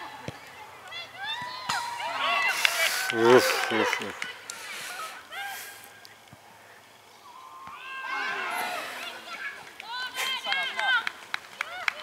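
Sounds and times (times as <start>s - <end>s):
young players shouting: 1.0s - 5.6s, 7.3s - 11.0s.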